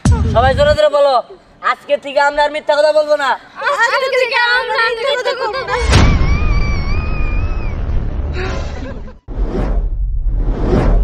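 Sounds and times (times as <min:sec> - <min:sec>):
whoosh sound effects: 0:09.2 - 0:11.0.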